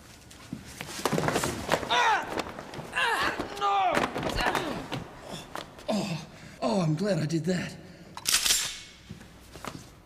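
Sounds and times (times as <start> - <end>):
people yelling: 1.9 - 5.0
grunts of effort: 1.9 - 6.6.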